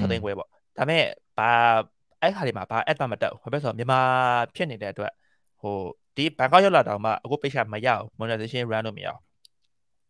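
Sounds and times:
man speaking into a microphone: 0.0s - 9.3s.

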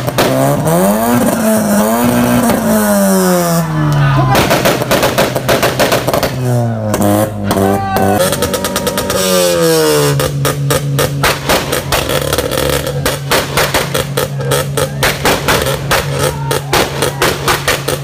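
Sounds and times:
car exhaust revving: 0.0s - 18.0s
exhaust crackling and popping: 0.0s - 18.0s.

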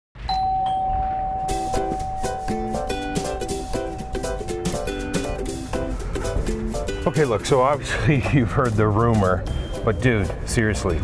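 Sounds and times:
doorbell chimes: 0.3s - 6.2s, 9.5s - 10.2s
plucked-string music: 0.9s - 11.0s.

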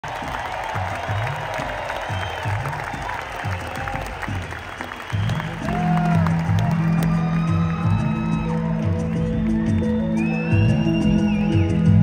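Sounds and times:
audience applauding: 0.0s - 12.0s
audience whistling: 0.2s - 12.0s.

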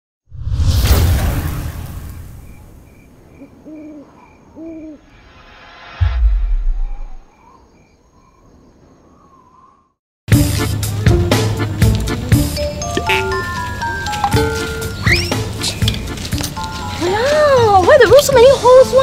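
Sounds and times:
owl hoots: 3.4s - 5.2s
faint high pulse: 4.9s - 7.3s
loud whoosh: 5.0s - 7.4s
deep boom: 5.2s - 7.4s.

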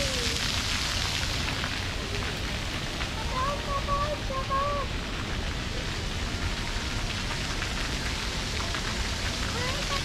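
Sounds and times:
water jets spraying: 0.0s - 10.0s.

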